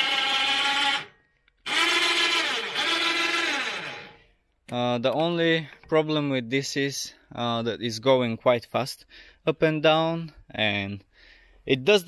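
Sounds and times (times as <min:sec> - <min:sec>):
electric winch motor whining: 0:00.0 - 0:04.2.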